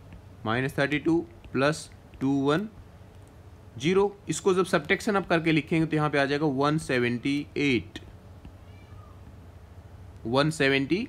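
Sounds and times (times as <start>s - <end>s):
low steady hum: 0.0s - 11.0s
faint animal call: 8.6s - 9.3s.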